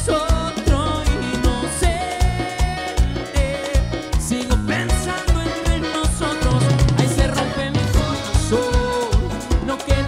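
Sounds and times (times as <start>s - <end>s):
accordion: 0.0s - 10.0s
bass drum and percussion beat: 0.0s - 10.0s
keyboards: 0.0s - 10.0s
man singing: 0.0s - 10.0s.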